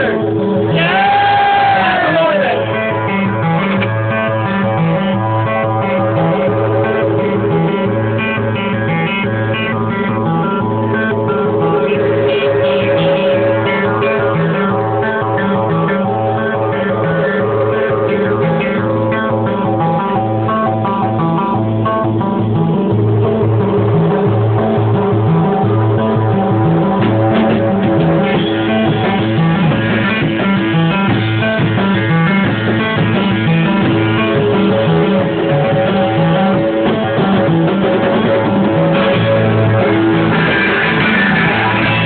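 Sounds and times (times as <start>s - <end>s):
guitar playing: 0.0s - 42.0s
repeating bass line: 0.0s - 42.0s.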